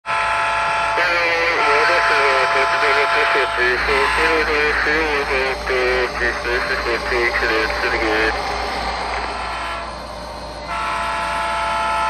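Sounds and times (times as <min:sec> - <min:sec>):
steady drone: 0:00.2 - 0:12.0
person talking: 0:01.0 - 0:08.4.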